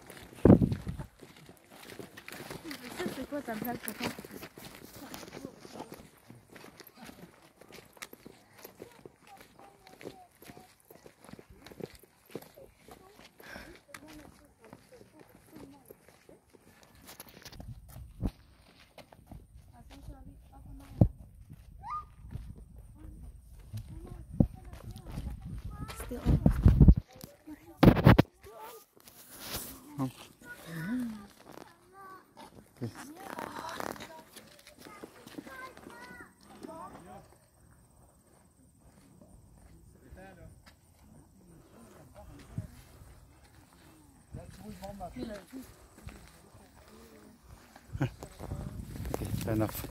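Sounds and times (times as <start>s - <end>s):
footsteps on gravel: 0.0s - 39.8s, 40.5s - 49.9s.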